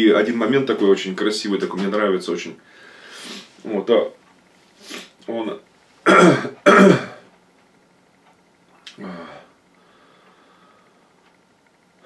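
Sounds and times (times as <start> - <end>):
man clearing his throat: 6.0 - 7.3.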